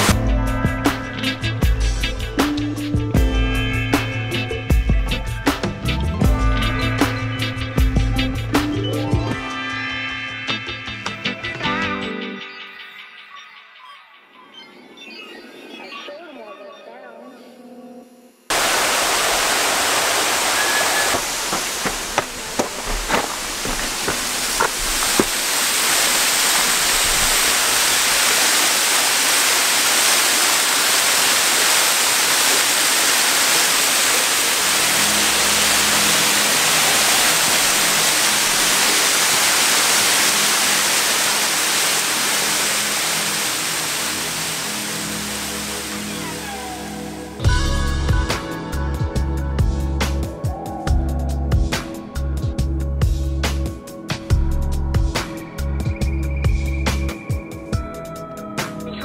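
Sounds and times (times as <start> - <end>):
waterfall splashing onto rocks: 18.5 - 46.1
sharp knocks: 21.1 - 25.4.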